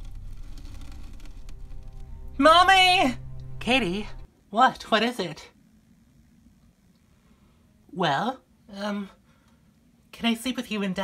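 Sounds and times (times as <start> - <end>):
quiet background music: 0.0 - 6.9.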